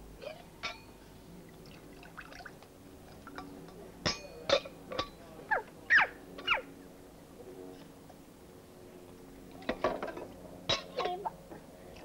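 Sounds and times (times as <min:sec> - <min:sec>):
water dripping and trickling: 0:01.5 - 0:03.5
water splashing and glugging: 0:01.6 - 0:02.6.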